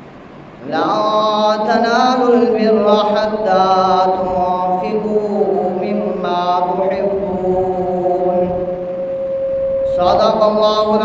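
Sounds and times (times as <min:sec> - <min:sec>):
man chanting religious recitation: 0:00.6 - 0:08.8, 0:09.9 - 0:11.0.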